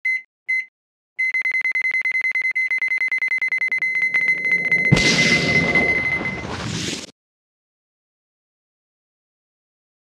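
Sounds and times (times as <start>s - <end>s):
electronic timer beeps: 0.0s - 6.4s.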